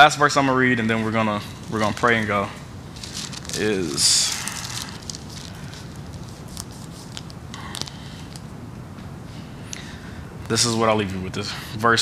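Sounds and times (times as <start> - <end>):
pages being turned: 1.7 - 8.5.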